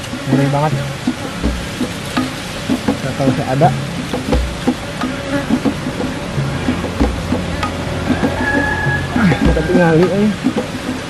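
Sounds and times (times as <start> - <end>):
dull thumps in soil: 0.0 - 7.8
bees buzzing: 0.0 - 11.0.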